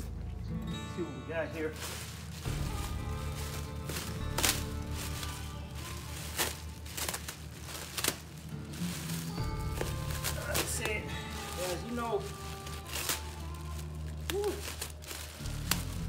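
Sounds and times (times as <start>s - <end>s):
background music: 0.0s - 16.0s
plastic stretch wrap crinkling: 1.3s - 16.0s.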